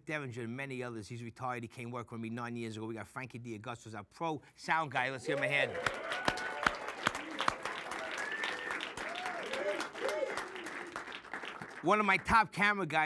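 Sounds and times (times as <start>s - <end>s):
audience applauding: 5.3s - 12.4s.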